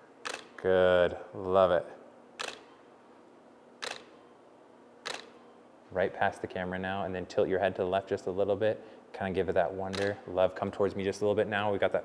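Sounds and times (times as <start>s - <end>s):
camera shutter clicks: 0.2s - 0.6s, 2.4s - 2.8s, 3.8s - 4.2s, 5.0s - 5.5s, 9.9s - 10.2s.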